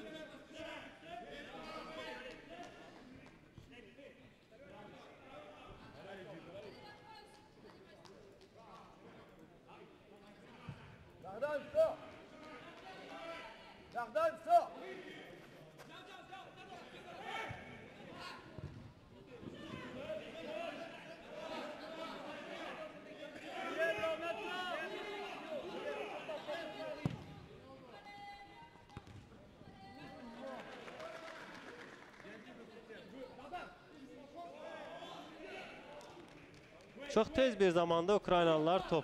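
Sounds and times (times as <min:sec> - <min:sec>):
loud shouts: 0:19.5 - 0:27.3.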